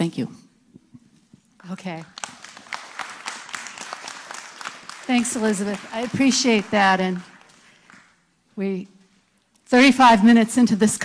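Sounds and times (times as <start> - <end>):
audience applauding: 2.0 - 8.2.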